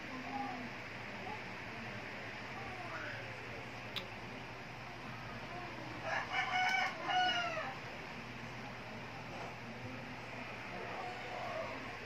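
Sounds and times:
rooster crowing: 6.0 - 7.8.

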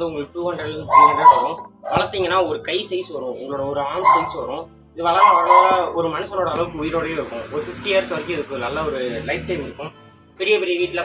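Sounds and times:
man talking: 0.0 - 11.0.

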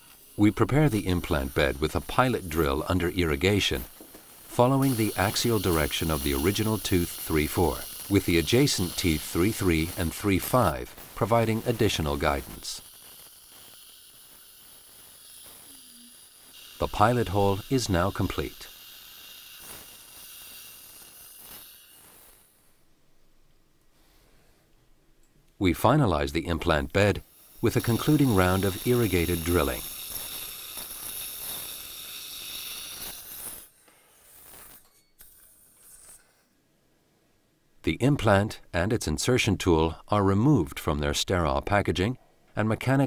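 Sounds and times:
dental drill whining: 0.0 - 22.7, 26.6 - 36.4
suction hissing faintly: 0.0 - 23.1, 25.9 - 36.6.

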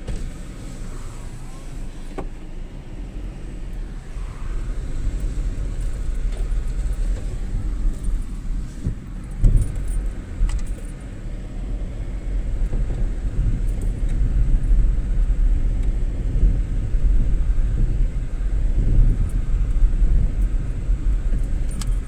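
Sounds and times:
car cabin low rumble: 0.0 - 22.0
light clicks and rattles: 5.2 - 11.1, 20.4 - 22.0.

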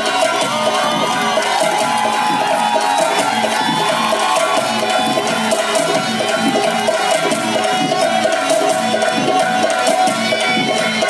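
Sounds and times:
folk music ensemble melody: 0.0 - 11.0
hand drum rhythm: 0.0 - 11.0.

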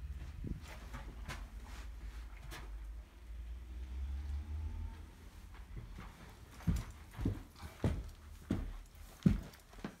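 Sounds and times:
footsteps on carpet: 0.1 - 2.5, 5.3 - 10.0.

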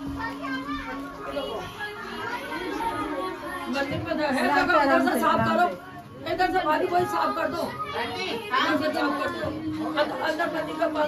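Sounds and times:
children and adults talking: 0.0 - 11.0.

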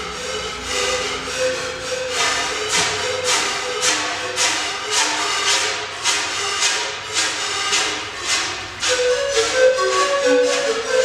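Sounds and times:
panpipe ensemble playing: 0.0 - 11.0.

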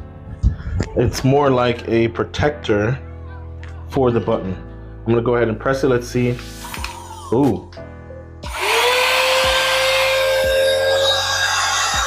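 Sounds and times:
mini vacuum motor whine: 8.5 - 11.3.

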